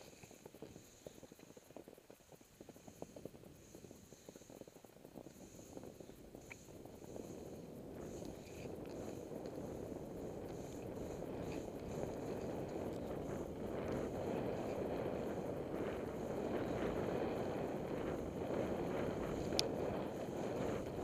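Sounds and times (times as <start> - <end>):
wind on microphone: 0.0 - 21.0.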